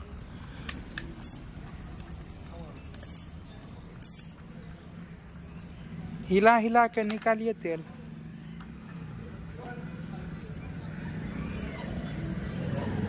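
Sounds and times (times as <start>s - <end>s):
metal spanners clinking: 1.2s - 4.4s.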